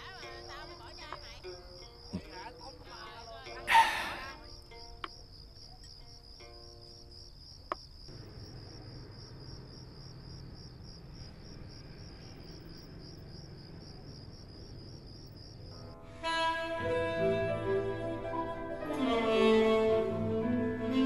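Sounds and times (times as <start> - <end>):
crickets chirping: 0.0 - 21.0.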